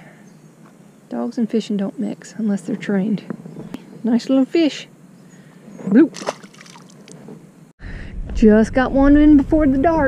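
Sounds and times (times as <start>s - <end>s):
fish splashing into water: 6.2s - 7.0s.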